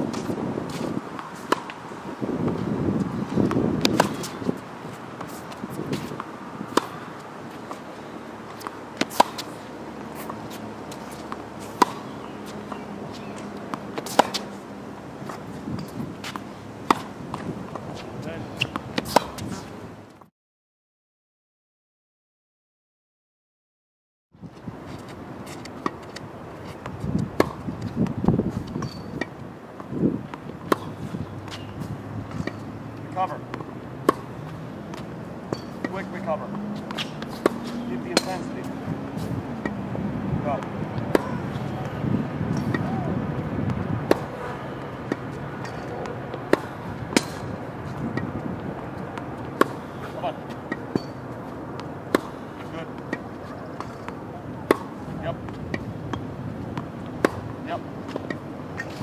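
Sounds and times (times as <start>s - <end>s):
tennis racket striking ball: 0.1s - 1.8s, 2.4s - 19.7s, 25.0s - 39.9s, 40.5s - 59.0s.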